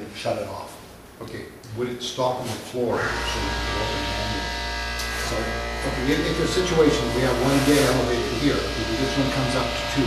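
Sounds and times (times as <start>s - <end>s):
electrical buzz: 2.9s - 10.0s.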